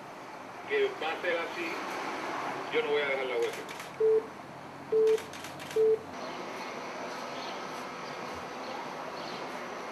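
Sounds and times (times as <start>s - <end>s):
telephone line beeps: 4.0s - 4.3s, 4.9s - 6.0s.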